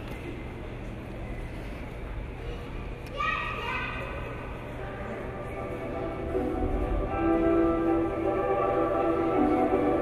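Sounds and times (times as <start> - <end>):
low hum of indoor hall: 0.0 - 10.0.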